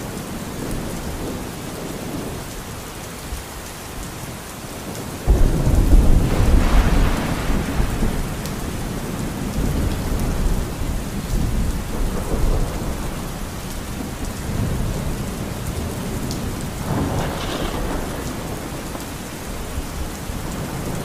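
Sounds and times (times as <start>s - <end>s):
steady rain: 0.0s - 21.0s
rolling thunder rumble: 5.3s - 21.0s.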